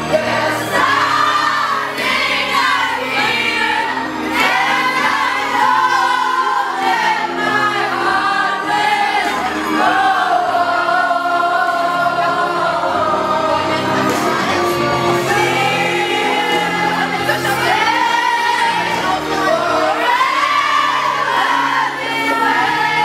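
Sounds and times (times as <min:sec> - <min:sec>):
instrumental backing track: 0:00.0 - 0:23.0
women singing together: 0:00.0 - 0:23.0.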